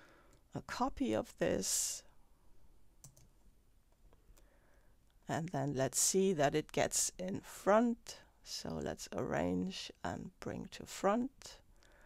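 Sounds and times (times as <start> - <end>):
computer mouse and keyboard clicks: 3.0 - 3.3.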